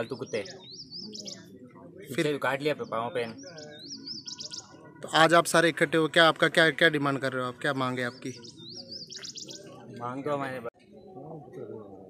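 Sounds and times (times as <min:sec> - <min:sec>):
bird singing: 0:00.0 - 0:12.0
faint murmuring voices: 0:00.0 - 0:12.0.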